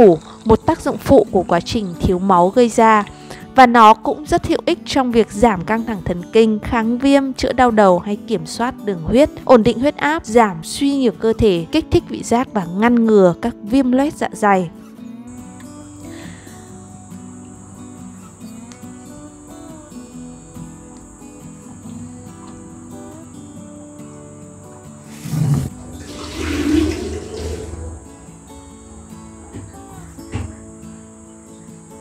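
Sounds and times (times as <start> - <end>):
background music: 0.0 - 32.0
water sloshing and swishing: 25.2 - 28.1.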